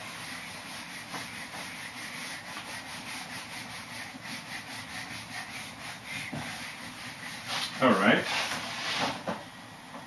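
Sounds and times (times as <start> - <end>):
eraser rubbing on whiteboard: 0.0 - 9.2.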